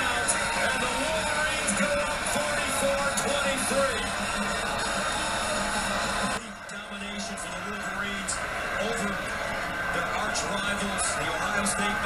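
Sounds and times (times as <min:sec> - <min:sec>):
commentator speaking: 0:00.0 - 0:04.7, 0:06.4 - 0:12.0
background music: 0:00.0 - 0:12.0
stadium crowd noise: 0:00.0 - 0:12.0.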